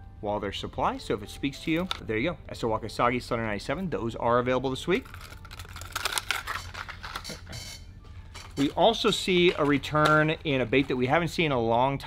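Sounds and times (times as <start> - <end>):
packaging rustle: 5.0 - 7.5.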